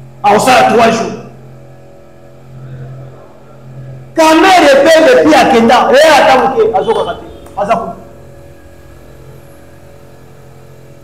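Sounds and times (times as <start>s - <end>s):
steady low hum: 0.0s - 11.0s
man speaking: 0.2s - 1.4s, 2.6s - 8.1s.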